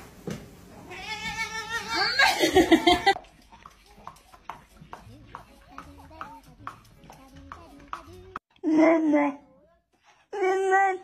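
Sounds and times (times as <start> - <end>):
cat meowing: 0.8 - 2.2.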